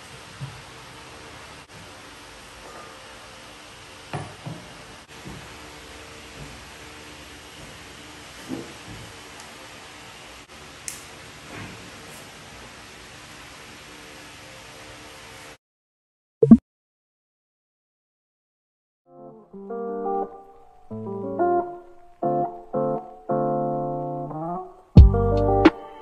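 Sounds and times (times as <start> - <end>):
room hiss: 0.0 - 15.6.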